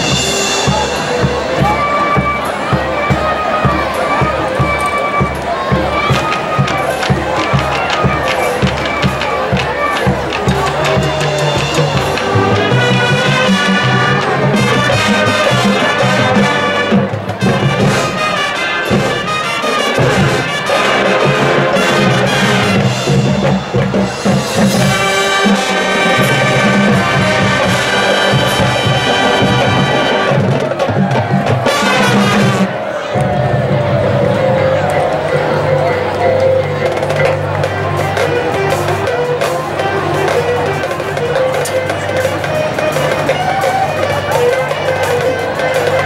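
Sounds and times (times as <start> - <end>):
marching band brass music: 0.0 - 46.0.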